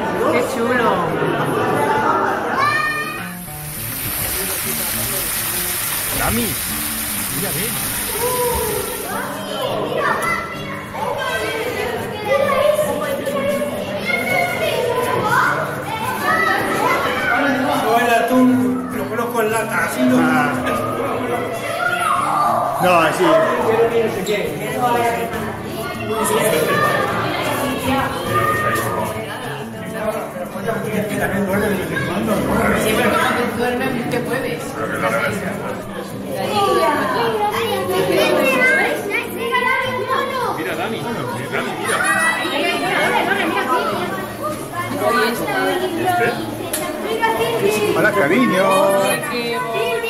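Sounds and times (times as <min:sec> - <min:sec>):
people talking and calling out: 0:00.0 - 0:50.0
high children's voices: 0:02.3 - 0:04.9, 0:08.0 - 0:17.6, 0:21.3 - 0:22.8, 0:36.4 - 0:40.7, 0:41.7 - 0:50.0.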